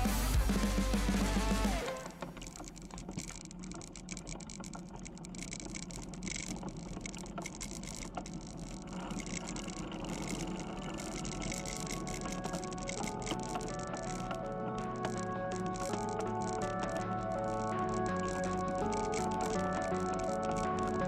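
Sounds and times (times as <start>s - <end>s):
bicycle tyres rolling on concrete: 1.3s - 21.0s
bike clicks and rattles: 1.9s - 21.0s.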